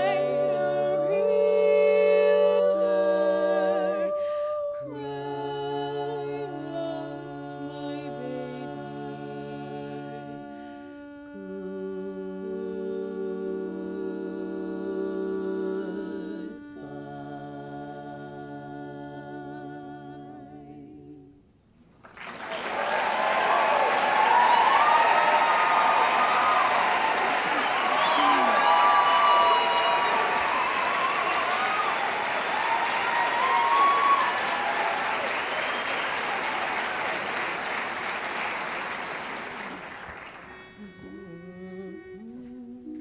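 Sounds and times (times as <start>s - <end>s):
women singing a cappella chord: 0.0s - 21.4s, 40.5s - 43.0s
audience applauding and cheering: 22.0s - 41.1s
voices calling out: 23.2s - 36.3s.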